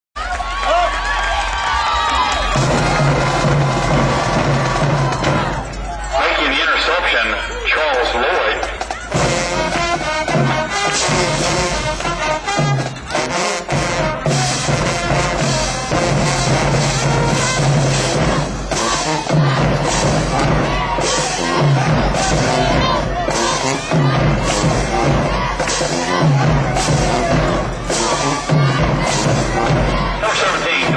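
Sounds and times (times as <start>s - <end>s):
brass instruments: 0.2s - 30.9s
marching band playing loudly: 1.6s - 30.9s
snare and bass drums: 2.3s - 5.8s, 8.5s - 30.9s.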